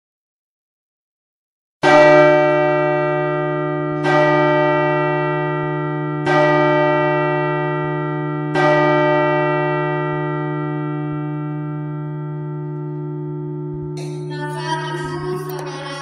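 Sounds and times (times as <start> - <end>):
church bell tolling: 1.8 - 16.0.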